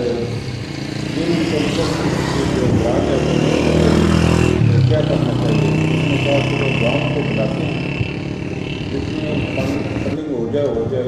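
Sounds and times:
engine running: 0.0s - 11.0s.

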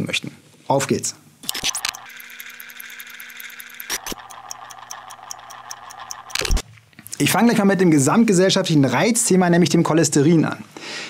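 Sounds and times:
fast high ticks: 1.5s - 6.6s
synthetic hum: 1.5s - 6.6s.

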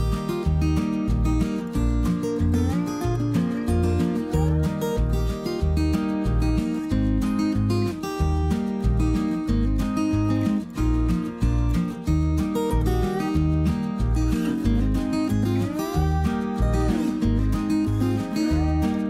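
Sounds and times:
acoustic guitar tune: 0.0s - 19.0s
steady bass beat: 0.0s - 19.0s.

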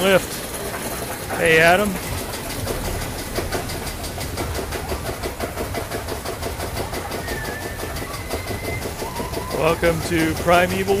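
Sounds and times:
chain lift clacking: 0.0s - 11.0s
thin steady whine: 0.0s - 11.0s
low steady hum: 1.4s - 10.4s.

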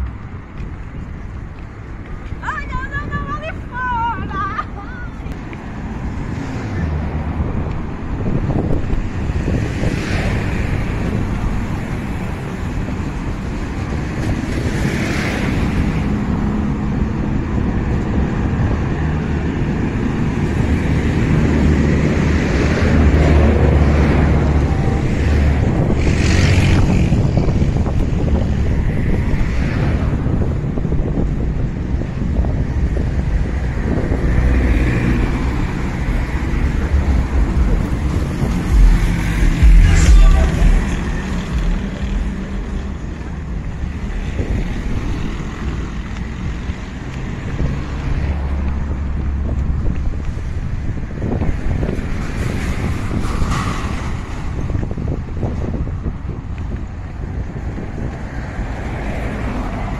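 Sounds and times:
cars passing: 0.0s - 59.9s
wind buffeting microphone: 0.0s - 59.9s.

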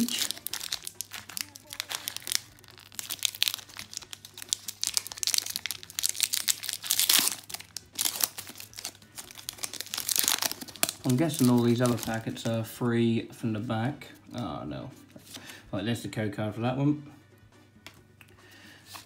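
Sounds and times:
foil wrapper tearing and crinkling: 0.0s - 12.5s.

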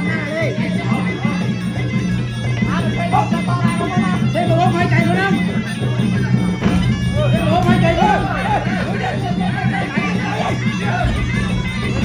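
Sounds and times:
crowd chatter: 0.0s - 12.0s
steady drums: 0.0s - 12.0s
wind instrument melody: 0.0s - 12.0s.

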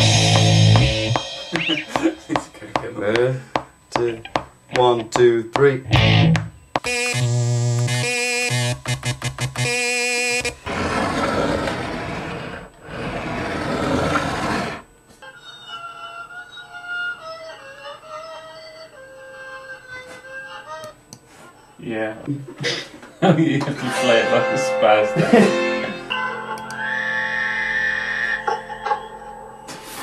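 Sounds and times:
plucked bass guitar notes: 0.0s - 2.4s, 5.8s - 6.6s, 7.2s - 9.7s, 23.8s - 26.8s
synthesizer melody of held notes: 0.0s - 2.4s, 6.8s - 10.5s, 23.8s - 30.0s
buzzy synthesizer tone wobbling: 5.9s - 10.7s.

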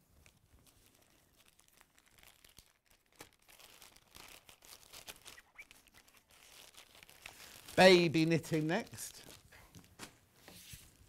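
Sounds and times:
plastic bag crinkling: 0.2s - 10.0s.

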